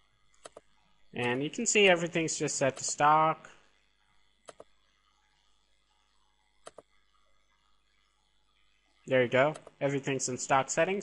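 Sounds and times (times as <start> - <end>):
computer mouse double-click: 4.5 - 4.7, 6.6 - 6.9.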